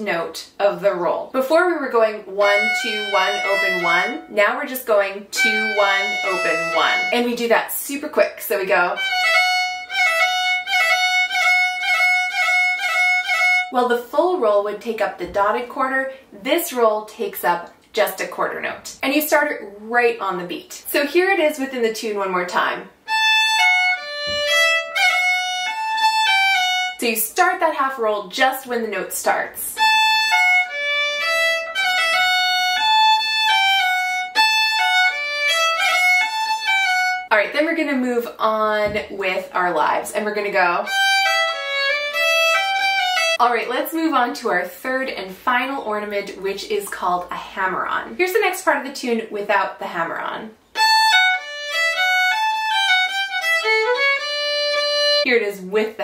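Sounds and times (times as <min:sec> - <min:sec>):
solo fiddle with grace notes: 0:02.3 - 0:04.3, 0:05.3 - 0:07.4, 0:09.0 - 0:13.7, 0:23.0 - 0:27.0, 0:29.8 - 0:37.3, 0:40.8 - 0:43.4, 0:50.7 - 0:55.3.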